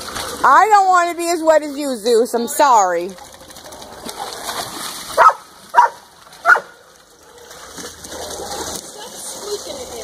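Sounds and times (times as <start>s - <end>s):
dog barking: 5.2s - 6.8s.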